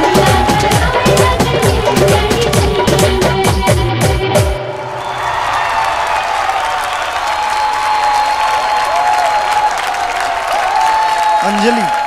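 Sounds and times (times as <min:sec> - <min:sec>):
dance music: 0:00.0 - 0:05.0
audience applauding: 0:04.8 - 0:12.0.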